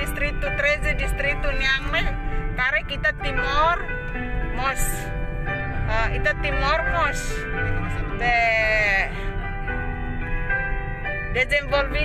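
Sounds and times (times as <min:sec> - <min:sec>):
backing music: 0:00.0 - 0:12.0.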